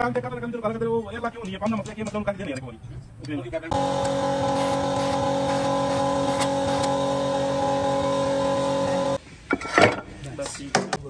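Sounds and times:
machine hum with hiss: 0:03.7 - 0:09.2.

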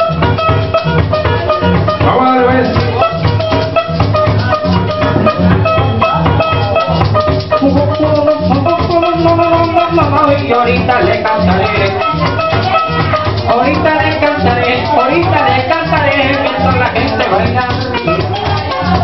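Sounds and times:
maracas shaking: 0:00.0 - 0:19.0
plucked-string melody: 0:00.0 - 0:19.0
pulsing bass: 0:00.0 - 0:19.0.

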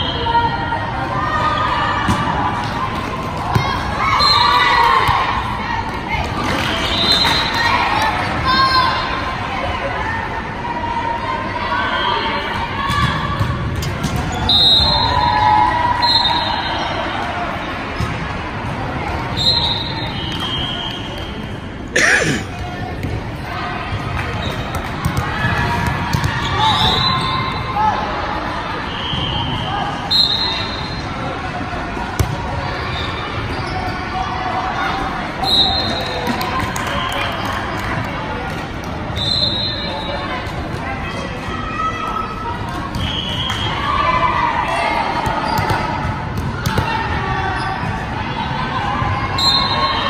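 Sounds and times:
voices in a hall: 0:00.0 - 0:50.0
balls thudding on court: 0:24.7 - 0:26.4, 0:32.2 - 0:32.4
sneaker squeaks on court floor: 0:45.3 - 0:45.9.

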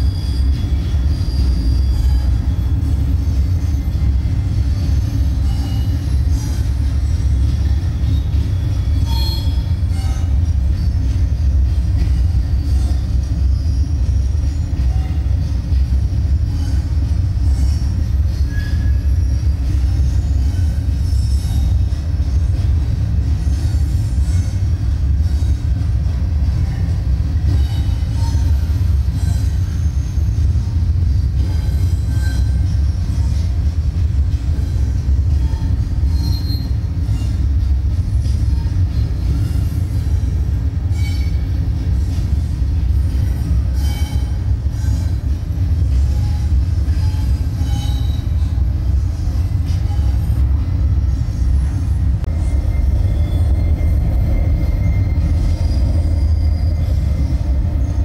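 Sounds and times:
steady low rumble: 0:00.0 - 0:29.2, 0:30.3 - 0:43.8, 0:44.4 - 0:58.0.

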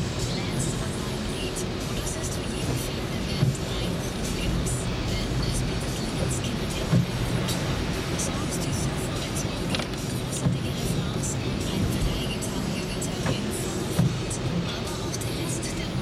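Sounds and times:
car engine noise: 0:00.0 - 0:16.0
tyres on wet road: 0:00.0 - 0:16.0.

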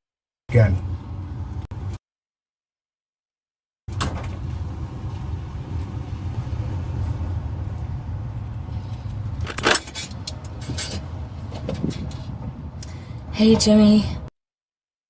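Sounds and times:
low rumble of street traffic: 0:00.5 - 0:02.0, 0:03.9 - 0:14.3
phone handset clicks and rattles: 0:09.4 - 0:10.5.

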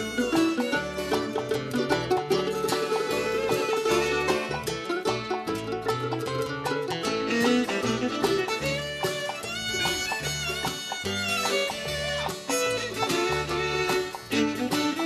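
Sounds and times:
bluegrass band playing: 0:00.0 - 0:15.0.

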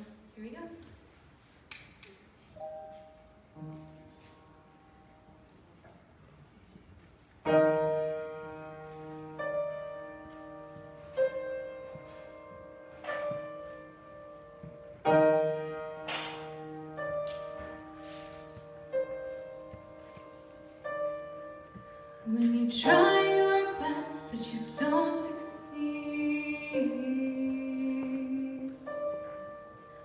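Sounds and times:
piano chords: 0:02.6 - 0:05.6, 0:07.4 - 0:30.0.

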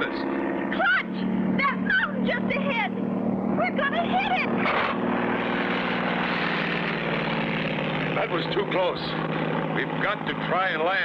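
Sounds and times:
propeller airplane engine droning: 0:00.0 - 0:11.0.

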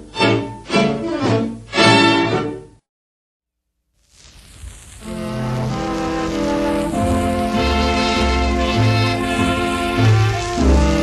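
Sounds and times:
string orchestra chord: 0:05.1 - 0:11.0.

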